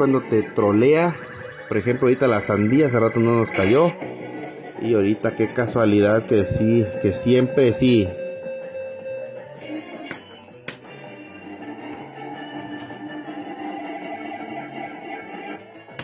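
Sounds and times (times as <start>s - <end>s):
slot machine electronic jingle: 0.0s - 4.0s, 4.9s - 15.3s.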